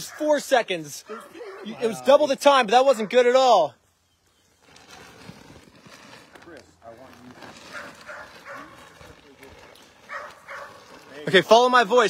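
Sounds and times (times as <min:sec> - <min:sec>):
light rustling: 0:04.3 - 0:11.4.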